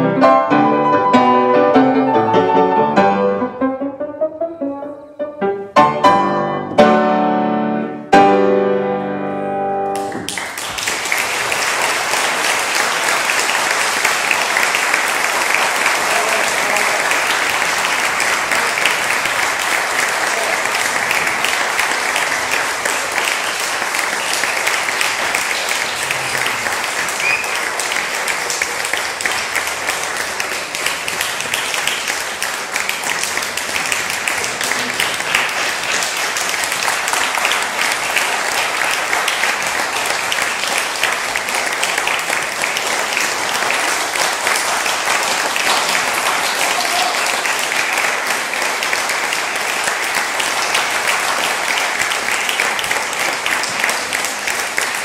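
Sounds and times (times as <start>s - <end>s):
audience applauding: 9.9s - 55.0s.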